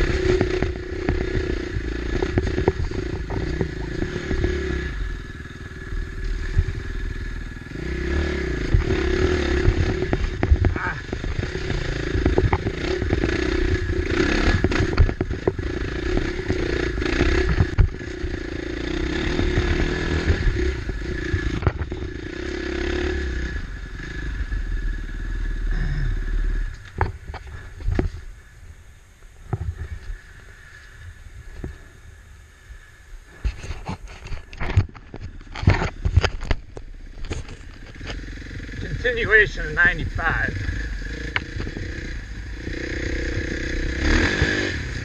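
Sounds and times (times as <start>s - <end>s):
dirt bike engine: 0.0s - 45.0s.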